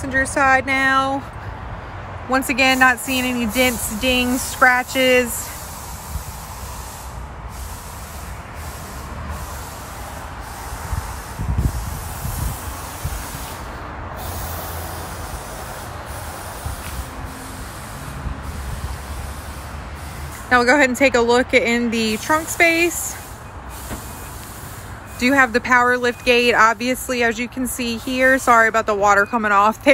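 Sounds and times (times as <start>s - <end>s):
outdoor background hiss: 2.2s - 29.8s.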